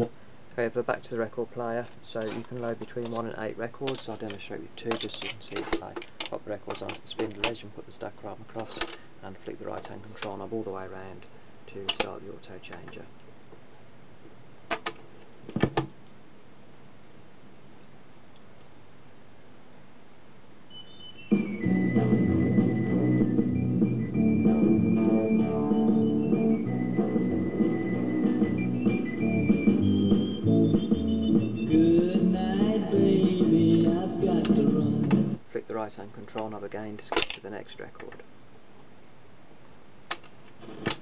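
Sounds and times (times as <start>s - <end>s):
record playing through speaker: 20.7s - 35.4s, 40.5s - 41.0s.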